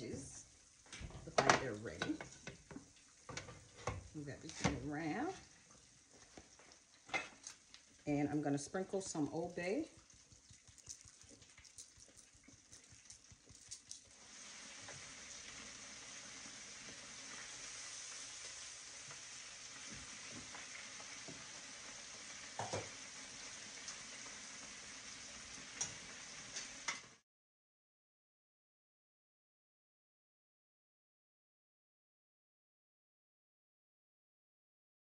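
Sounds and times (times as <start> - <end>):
oil sizzling in deep fryer: 0.0 - 27.2.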